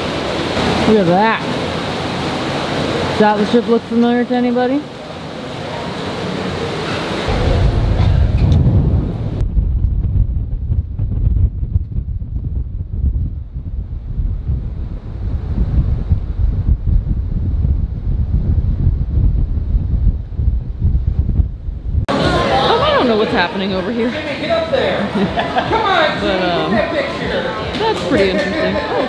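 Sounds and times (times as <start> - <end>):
wind buffeting microphone: 7.2 - 24.1.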